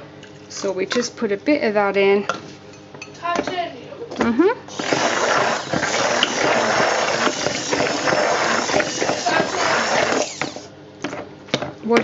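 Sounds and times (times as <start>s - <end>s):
batter being whisked: 4.7s - 10.7s.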